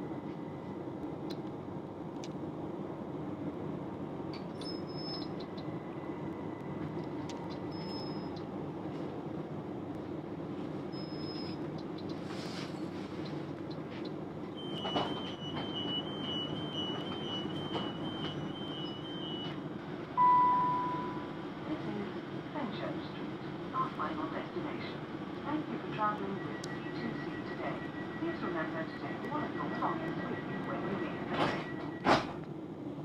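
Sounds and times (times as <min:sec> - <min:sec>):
low hum of train: 0:00.0 - 0:33.0
short electronic beeps: 0:07.7 - 0:08.4, 0:10.9 - 0:11.6, 0:14.6 - 0:19.6, 0:20.2 - 0:21.2, 0:26.3 - 0:32.0
quick two-note beeps: 0:20.2 - 0:21.2.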